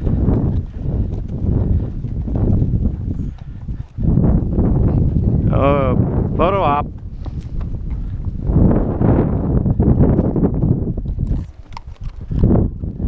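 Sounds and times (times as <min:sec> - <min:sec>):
hooves on rocky gravel trail: 0:00.0 - 0:13.0.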